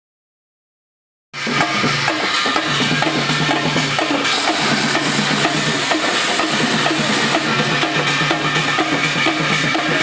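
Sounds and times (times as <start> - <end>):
loud steady drumming: 1.4 - 10.0.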